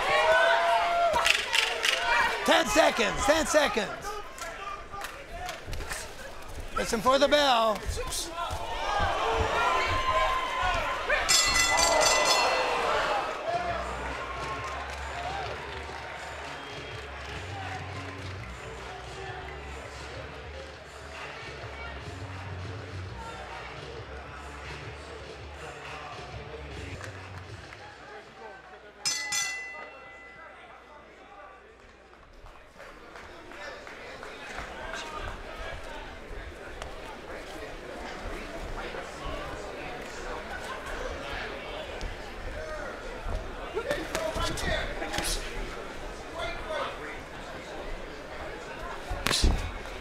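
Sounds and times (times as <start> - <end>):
boxing bell clanging: 11.2 - 13.2, 29.1 - 30.8.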